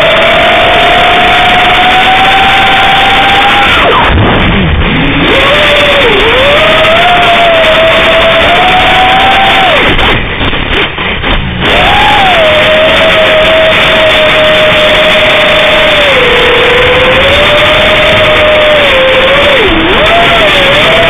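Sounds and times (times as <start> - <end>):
drone motors whining: 0.0 - 21.0.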